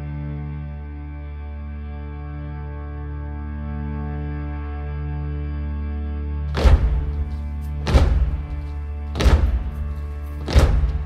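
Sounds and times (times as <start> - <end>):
heavy drum hits: 6.5 - 11.0.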